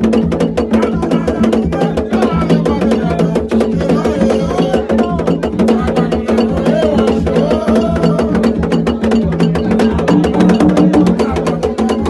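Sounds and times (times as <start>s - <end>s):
drums: 0.0s - 12.0s
fast cowbell strikes: 0.0s - 12.0s.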